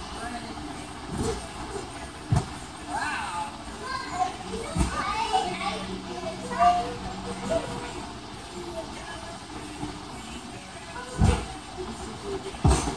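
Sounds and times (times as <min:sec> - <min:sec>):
thuds on a trampoline: 0:02.2 - 0:02.6, 0:11.1 - 0:11.5, 0:12.6 - 0:12.9
children's voices: 0:03.6 - 0:08.1.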